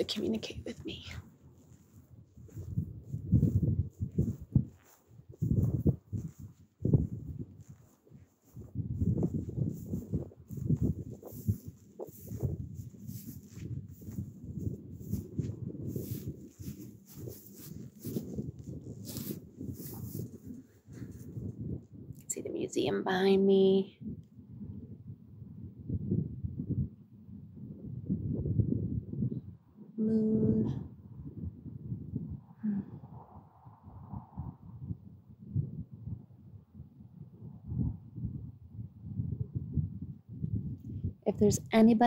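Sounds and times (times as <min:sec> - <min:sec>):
wind on microphone: 0:00.0 - 0:42.0.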